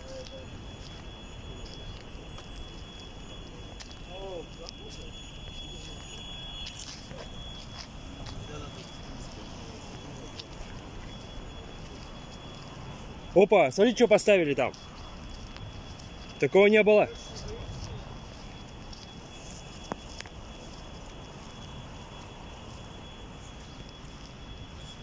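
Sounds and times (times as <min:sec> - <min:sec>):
faint voices: 0:00.0 - 0:24.0
distant traffic hum: 0:00.0 - 0:25.0.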